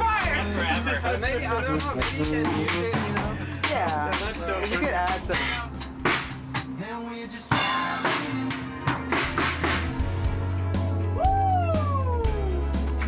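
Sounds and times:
drums in a steady rhythm: 0.0s - 13.0s
indie pop band music: 0.0s - 13.0s.

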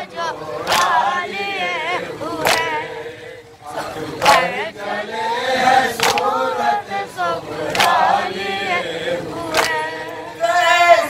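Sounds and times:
men chanting into a microphone: 0.0s - 11.0s.

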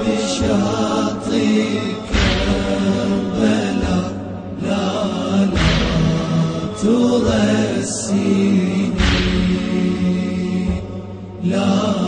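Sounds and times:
voices chanting a lament: 0.0s - 12.0s
deep drum beat: 2.1s - 4.3s, 5.5s - 7.4s, 9.0s - 10.1s.

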